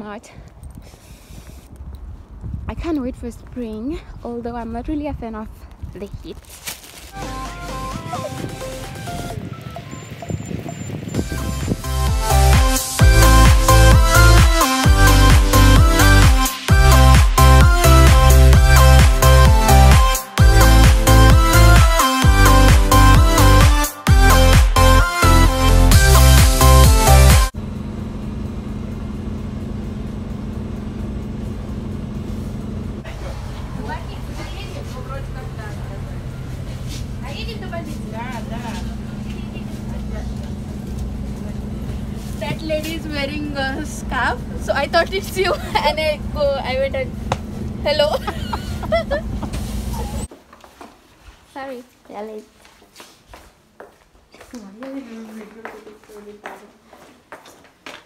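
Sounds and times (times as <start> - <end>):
background music: 7.1 - 10.1, 11.2 - 27.5
bus engine hum: 7.1 - 23.6, 24.2 - 50.3
voices: 33.0 - 47.2, 47.8 - 50.3, 54.5 - 57.1.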